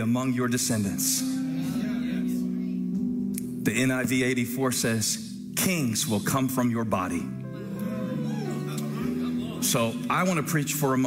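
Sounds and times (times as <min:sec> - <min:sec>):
soft music of held chords: 0:00.0 - 0:11.0
man speaking: 0:08.3 - 0:11.0.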